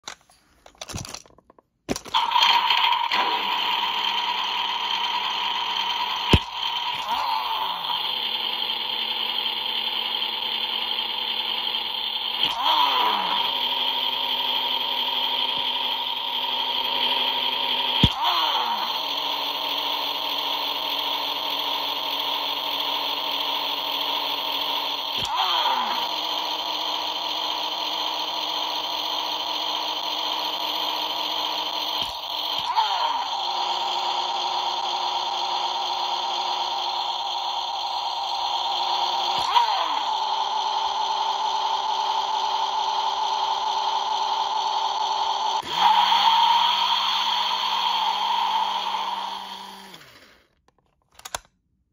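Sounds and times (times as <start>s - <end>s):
toy car electronic engine hum: 1.9s - 50.6s.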